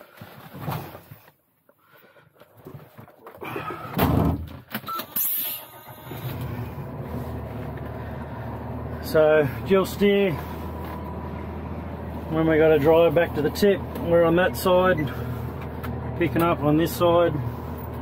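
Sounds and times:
knocks and rustling in truck cab: 3.8s - 4.8s
loud thud: 4.0s - 4.5s
diesel engine idling: 5.4s - 18.0s.

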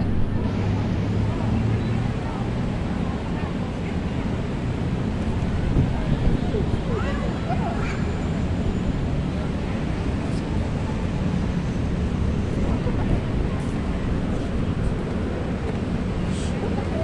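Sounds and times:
wind buffeting microphone: 4.8s - 17.0s.

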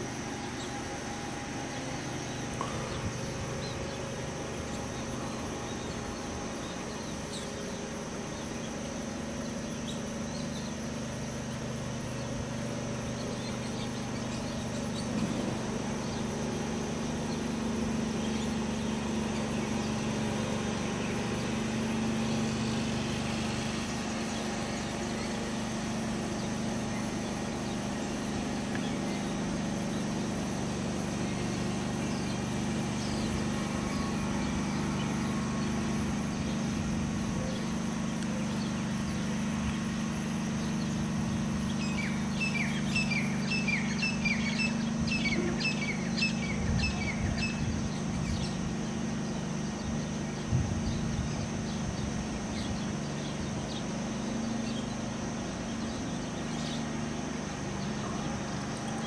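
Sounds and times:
drone motors humming: 0.0s - 59.0s.

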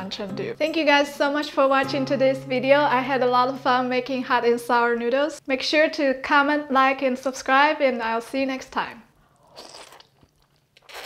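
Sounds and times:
person slurping noodles: 10.8s - 11.0s.

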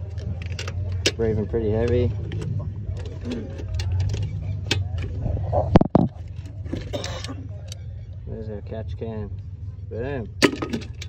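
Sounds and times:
clips clicking and metal knocks: 0.0s - 5.2s.

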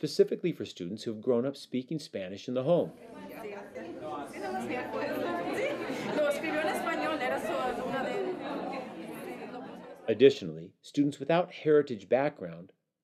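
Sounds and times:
overlapping chatter: 2.9s - 10.3s.

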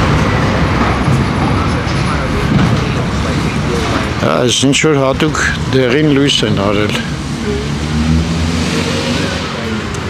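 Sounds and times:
chatter of many people: 0.0s - 8.2s, 9.0s - 10.0s
street traffic din: 0.0s - 10.0s.

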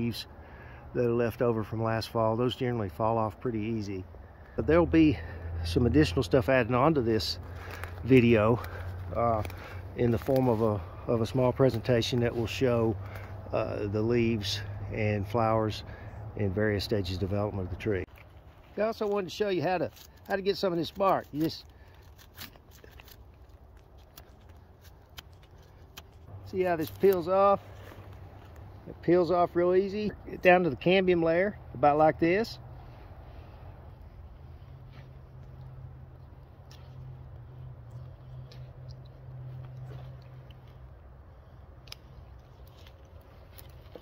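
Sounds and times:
knife peeling bark crackles: 7.2s - 13.5s, 18.1s - 28.8s, 34.9s - 44.0s
chewing bark crunchy clicks: 22.2s - 26.3s, 36.6s - 40.8s.

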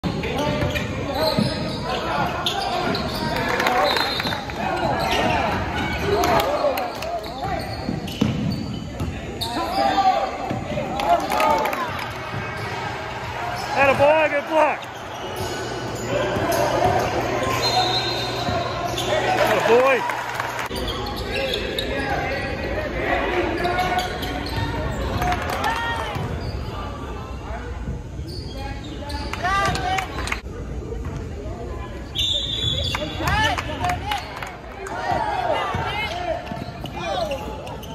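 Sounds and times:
sneakers squeaking: 0.0s - 30.4s, 32.0s - 37.9s
voices of players: 0.0s - 37.9s.

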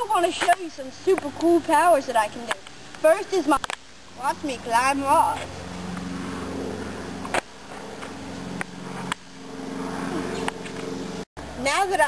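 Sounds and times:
motor hum: 0.0s - 12.0s.

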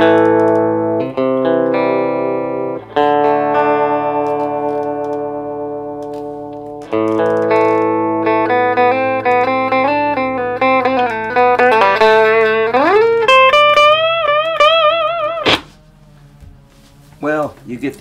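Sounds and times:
electric guitar playing: 0.0s - 16.6s.

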